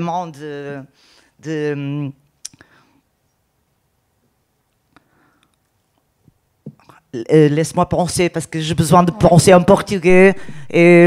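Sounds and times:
person speaking: 6.7s - 11.0s.

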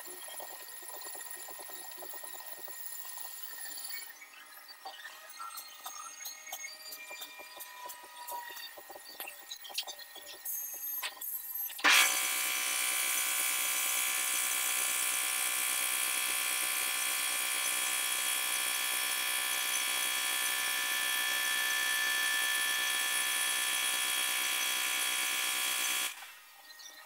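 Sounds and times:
air tool high-pitched whine: 0.0s - 27.0s.

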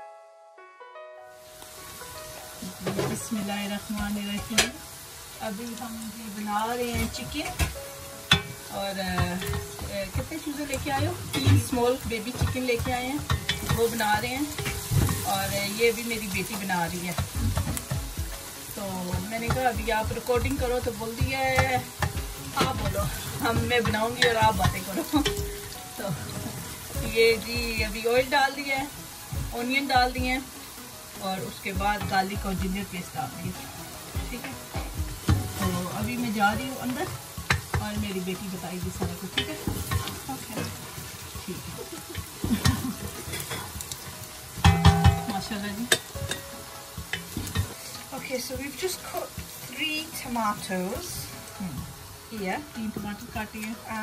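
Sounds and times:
onions sizzling in oil: 1.3s - 54.0s
wooden spoon scraping a pan: 6.8s - 18.1s, 19.0s - 28.7s, 31.6s - 46.4s
wooden spatula scraping pot: 19.1s - 27.4s.

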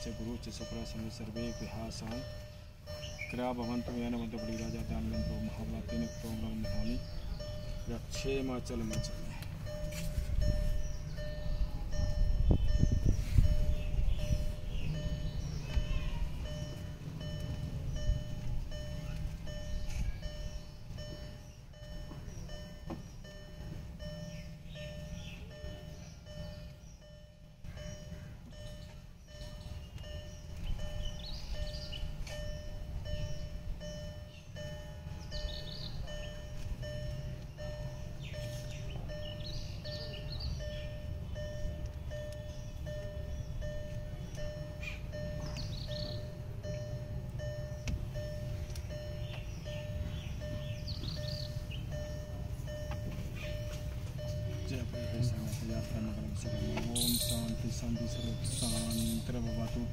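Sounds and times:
car warning chime: 0.0s - 59.9s
short high chirps: 35.3s - 59.8s.

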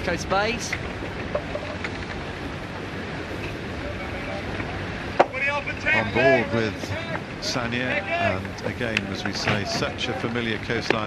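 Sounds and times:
water rushing past yacht: 0.0s - 11.0s.

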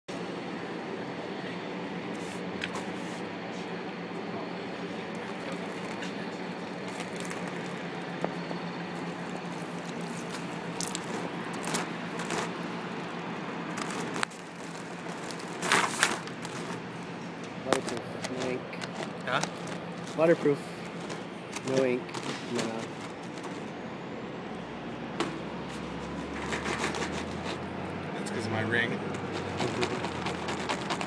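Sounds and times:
street traffic hum: 0.1s - 31.0s
hand rubbing wet banner: 5.2s - 8.2s, 8.9s - 13.1s, 26.1s - 27.6s, 29.2s - 31.0s
water splashing on a banner: 10.7s - 12.6s.

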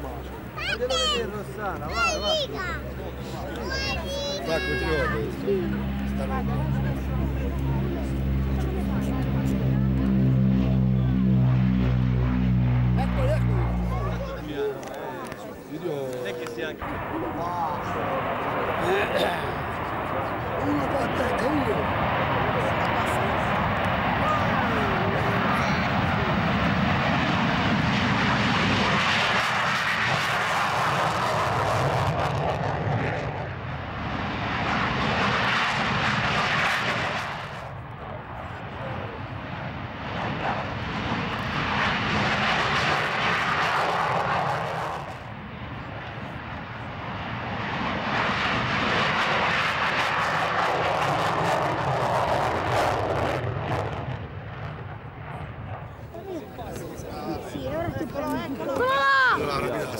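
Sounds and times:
jet roaring on take-off: 0.0s - 59.9s.

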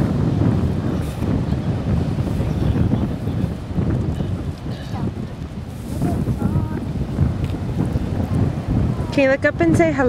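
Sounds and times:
ocean surf: 0.0s - 10.0s
wind buffeting microphone: 0.0s - 10.0s.

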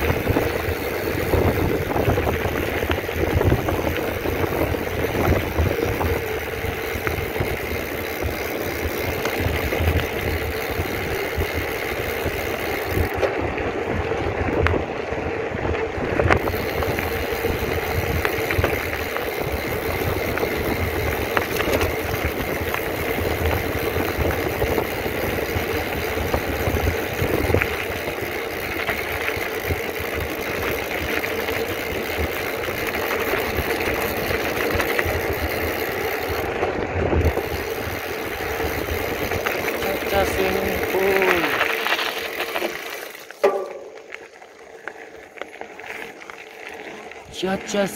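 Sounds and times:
wind buffeting microphone: 0.0s - 42.5s
bike tyres rumbling on gravel: 0.0s - 47.9s.

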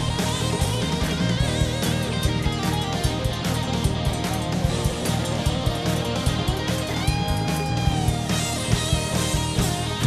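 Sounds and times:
live rock band playing: 0.0s - 10.0s.

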